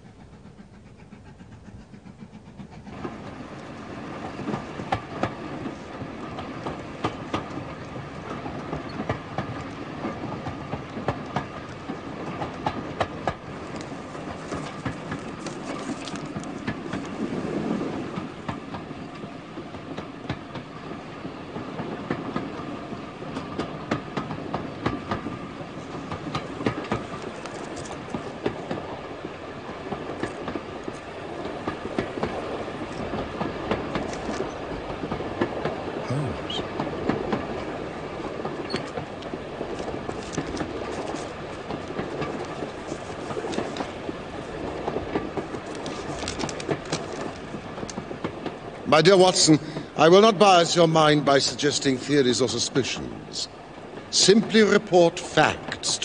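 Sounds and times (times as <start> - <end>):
train rumbling: 0.0 - 56.0
wheels clicking over rail joints: 0.0 - 56.0.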